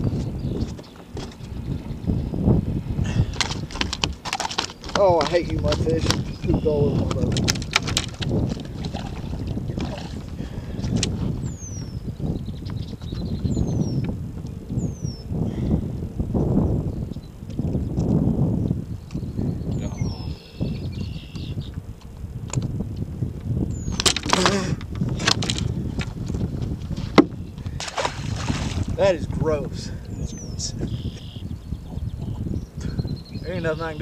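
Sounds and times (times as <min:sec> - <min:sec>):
wind buffeting microphone: 0:00.0 - 0:34.0
fish thrashing on deck: 0:03.1 - 0:10.3, 0:23.9 - 0:26.2, 0:27.0 - 0:29.0.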